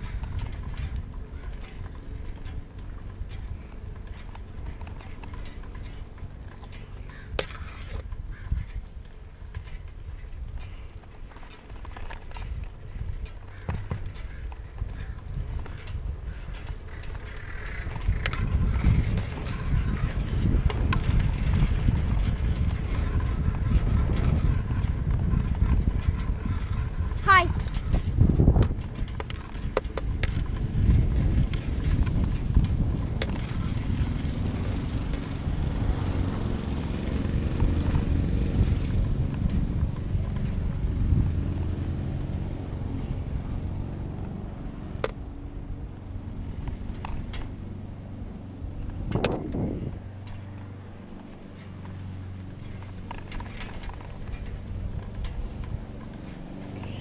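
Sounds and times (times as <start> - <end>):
clicks and rattles: 0.0 - 36.5, 48.8 - 56.8
bicycle tyres on asphalt: 0.0 - 57.0
wind rushing over microphone: 0.0 - 57.0.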